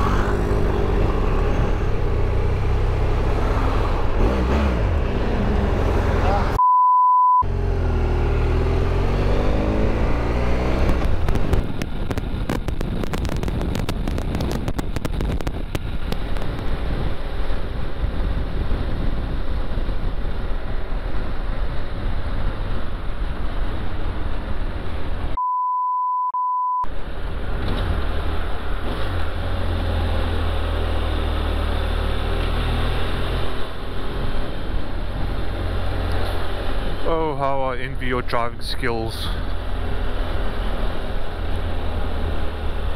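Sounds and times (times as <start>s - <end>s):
motorcycle engine revving: 0.0s - 6.6s, 7.4s - 11.8s
censor bleep: 6.6s - 7.5s, 25.4s - 26.9s
wind noise on microphone: 8.7s - 25.4s.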